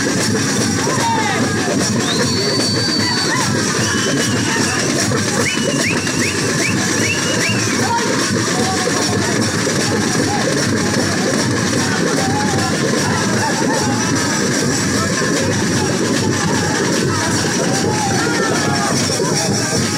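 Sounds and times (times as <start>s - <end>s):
fast folk drumming: 0.0s - 19.9s.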